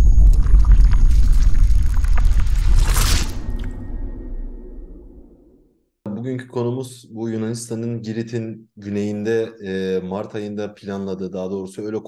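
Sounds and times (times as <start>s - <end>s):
crackles: 0.0s - 5.5s
whoosh: 0.0s - 5.7s.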